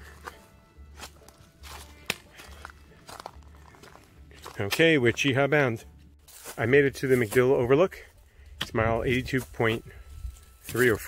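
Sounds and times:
footsteps on rocky trail: 0:00.0 - 0:11.0.

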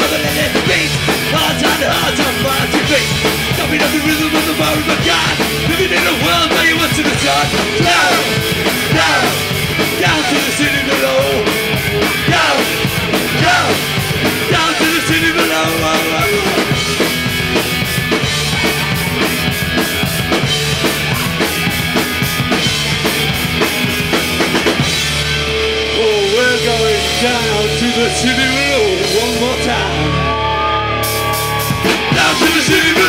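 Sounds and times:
bass guitar: 0:00.0 - 0:33.0
distorted electric guitars: 0:00.0 - 0:33.0
drum kit: 0:00.0 - 0:33.0
wavering lead guitar line: 0:00.0 - 0:33.0.

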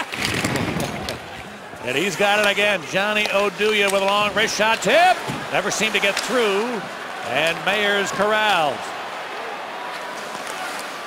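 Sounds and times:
sticks puck and skates on ice: 0:00.0 - 0:06.8
crowd murmur: 0:00.9 - 0:11.0.

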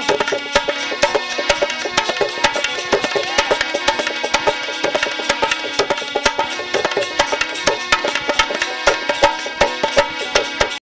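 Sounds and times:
hand drum playing: 0:00.0 - 0:10.8
hand percussion strikes: 0:00.0 - 0:10.8
harmonium notes: 0:00.0 - 0:10.8.

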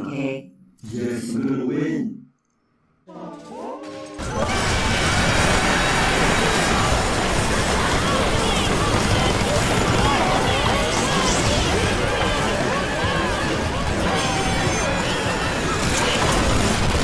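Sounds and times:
jumble of overlapping cartoon soundtracks: 0:03.0 - 0:17.0.

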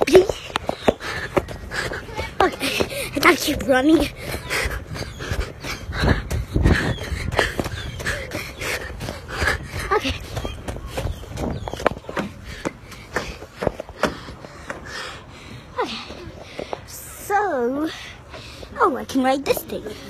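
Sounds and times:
child panting: 0:00.0 - 0:11.2, 0:12.4 - 0:17.0
footsteps: 0:00.0 - 0:15.1.

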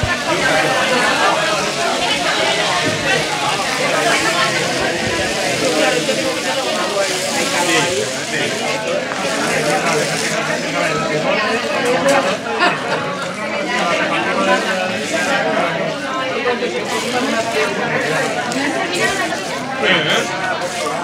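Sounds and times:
indistinct chatter of people: 0:00.0 - 0:21.0.

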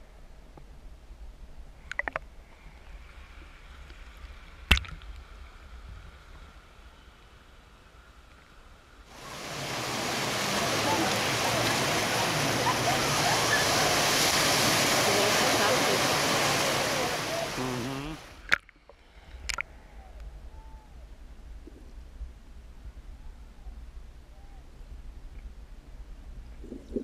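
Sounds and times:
muffled underwater hiss: 0:01.8 - 0:19.7
water rushing over camera: 0:09.1 - 0:19.8.

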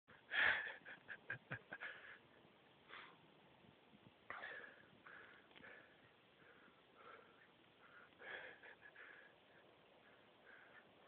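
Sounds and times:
person breathing: 0:01.8 - 0:03.2, 0:04.3 - 0:11.0
short breath puffs: 0:02.8 - 0:03.2.

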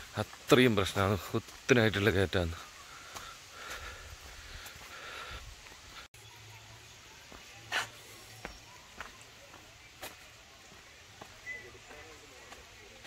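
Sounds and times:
footsteps on dirt path: 0:00.0 - 0:13.0
faint background voices: 0:02.6 - 0:13.0.

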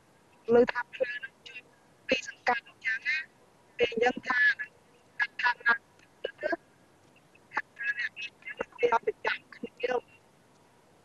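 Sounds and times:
woman talking over call line: 0:00.5 - 0:06.6, 0:07.5 - 0:10.0.

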